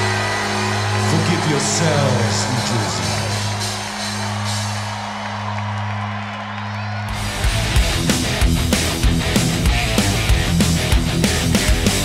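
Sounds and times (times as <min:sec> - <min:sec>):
crowd cheering: 0:00.0 - 0:12.0.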